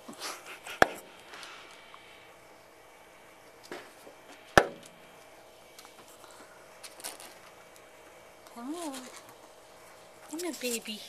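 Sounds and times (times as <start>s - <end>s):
sharp knock: 4.6s - 4.8s.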